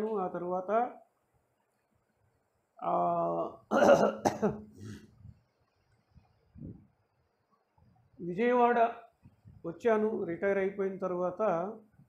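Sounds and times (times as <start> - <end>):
person coughing: 3.7 - 5.0.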